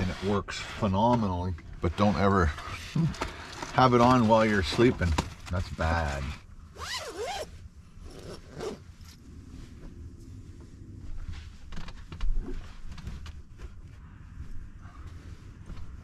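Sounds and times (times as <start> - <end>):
fabric rustling: 6.8 - 16.0.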